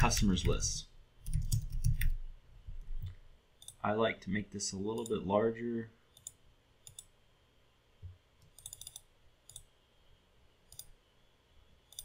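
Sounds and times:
computer mouse clicks: 1.2 - 2.2, 2.8 - 3.8, 6.1 - 7.1, 8.4 - 9.7, 10.7 - 11.0.

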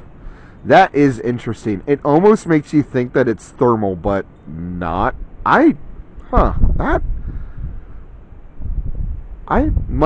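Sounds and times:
wind buffeting microphone: 3.9 - 10.0.

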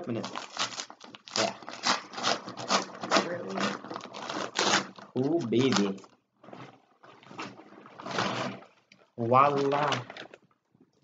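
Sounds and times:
rhythmic scraping on package: 0.0 - 6.0.

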